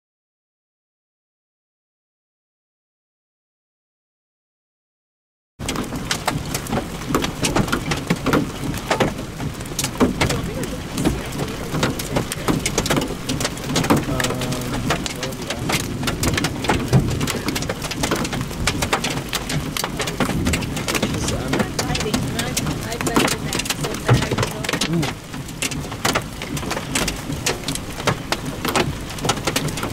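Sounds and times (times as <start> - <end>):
hail knocking: 5.6 - 29.9
rain-like hiss: 5.6 - 29.9.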